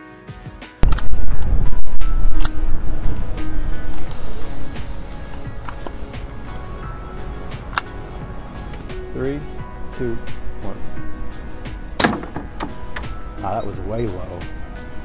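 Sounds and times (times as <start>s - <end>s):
soft background music: 0.0s - 15.0s
sharp clicks: 0.8s - 1.5s
loud low rumble outdoors: 0.8s - 13.4s.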